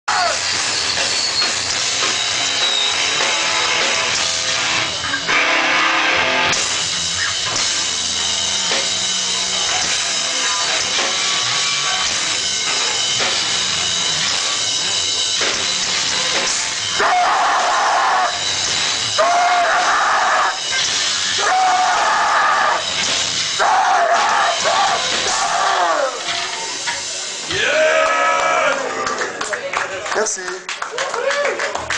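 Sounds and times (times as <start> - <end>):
loud live hardcore band: 0.1 - 29.2.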